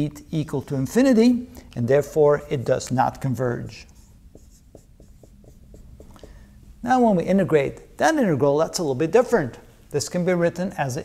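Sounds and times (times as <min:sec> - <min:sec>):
marker writing on whiteboard: 0:03.6 - 0:06.5.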